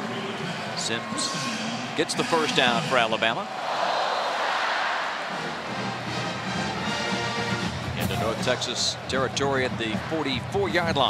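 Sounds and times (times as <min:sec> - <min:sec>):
stadium crowd cheering: 0:00.0 - 0:11.0
band music: 0:05.4 - 0:09.0.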